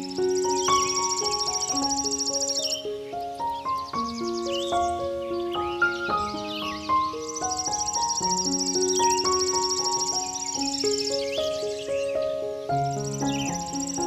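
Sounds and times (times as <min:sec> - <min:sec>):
birds chirping: 0:00.0 - 0:14.0
gentle solo piano music: 0:00.0 - 0:14.0
high rapid insect trill: 0:00.0 - 0:14.0.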